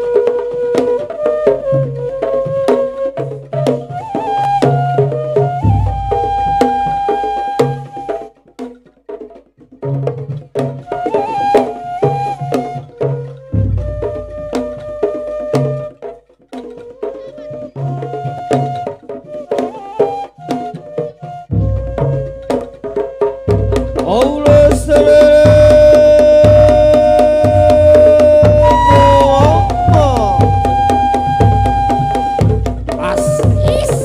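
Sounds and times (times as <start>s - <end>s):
bamboo flute melody: 0.0s - 8.9s, 10.6s - 34.0s
hand drums playing: 0.0s - 34.0s.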